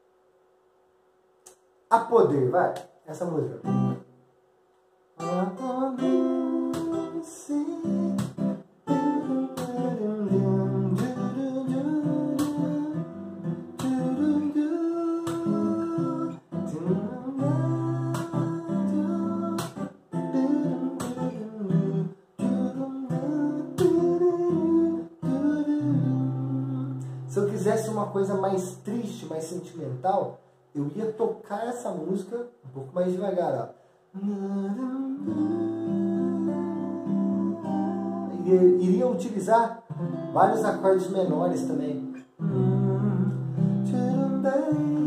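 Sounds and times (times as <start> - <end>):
acoustic guitar strummed and picked: 3.6 - 4.1, 5.2 - 29.1, 34.3 - 45.0.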